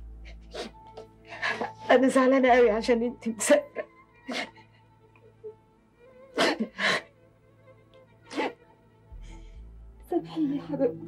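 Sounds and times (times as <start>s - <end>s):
faint soft background music: 0.0s - 11.0s
woman sobbing: 3.3s - 5.6s, 6.4s - 7.1s.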